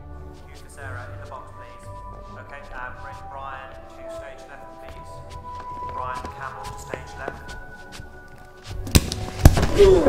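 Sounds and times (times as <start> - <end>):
quiet music with held notes: 0.0 - 10.0.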